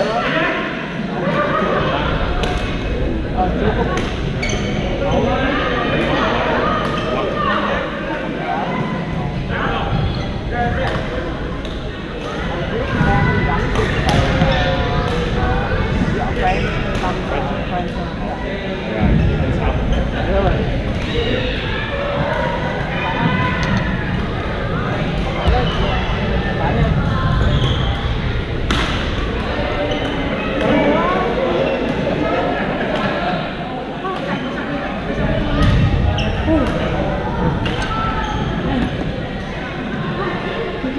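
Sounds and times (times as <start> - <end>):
hubbub of voices: 0.0 - 40.9.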